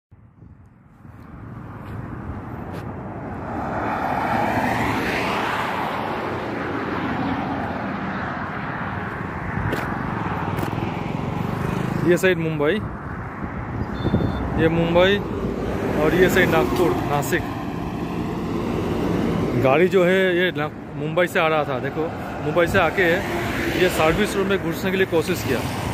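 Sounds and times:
steady road noise: 0.1s - 25.9s
vehicle passing by: 1.3s - 12.2s, 14.4s - 20.1s, 21.6s - 25.9s.

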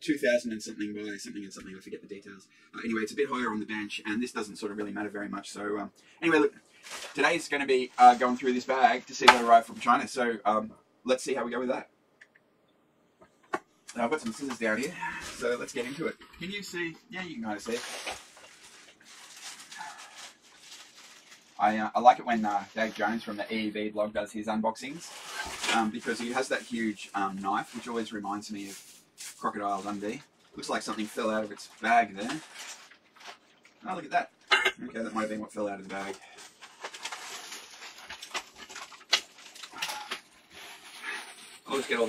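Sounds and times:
plastic bag crinkling: 17.5s - 21.8s, 25.0s - 33.9s, 35.9s - 42.0s.

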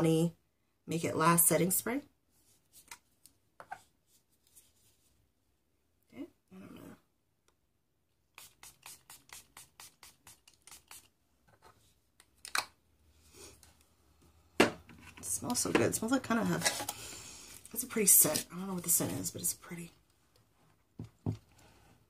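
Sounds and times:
spray bottle spritzing: 8.4s - 11.1s.

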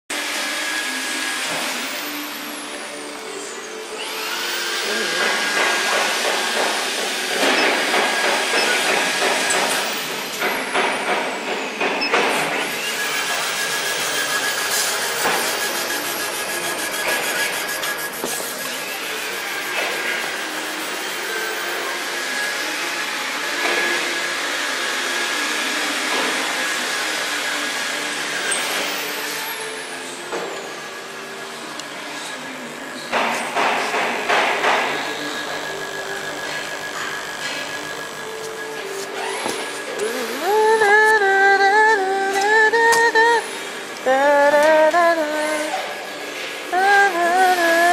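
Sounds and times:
laser head whining glides: 34.9s - 41.5s.

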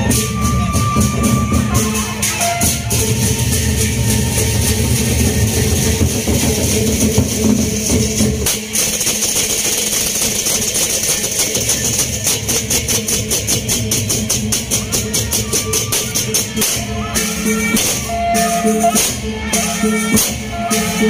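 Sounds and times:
hand cymbals clashing: 0.0s - 21.0s
large barrel drums: 0.0s - 21.0s.

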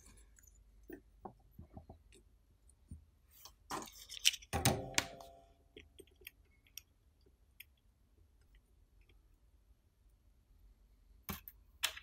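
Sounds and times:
knocks and scrapes of handling: 2.8s - 4.6s.

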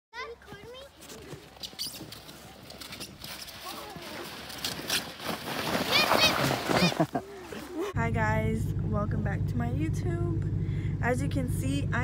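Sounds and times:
snow tube scraping over snow: 2.5s - 7.7s.

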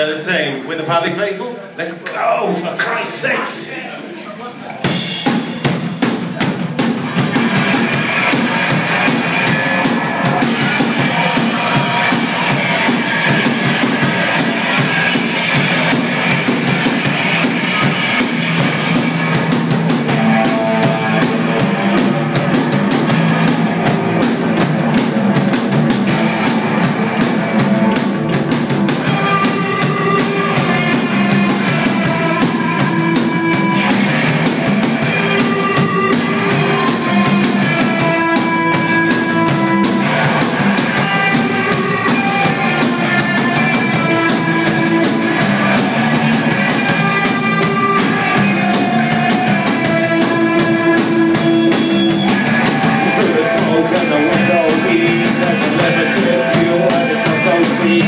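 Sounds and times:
live rock band playing: 0.0s - 58.0s.

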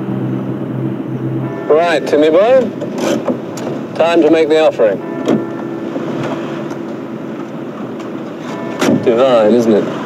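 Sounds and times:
faint low drone: 0.0s - 4.2s
car engine and road noise: 0.0s - 10.0s.

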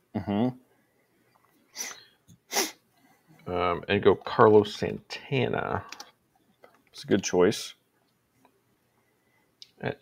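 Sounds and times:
person sneezing: 1.8s - 2.8s.

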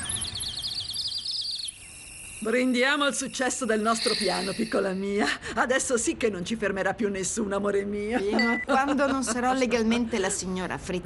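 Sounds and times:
songbird warbling trill: 0.0s - 4.9s
faint high insect-like tone: 0.0s - 5.0s.

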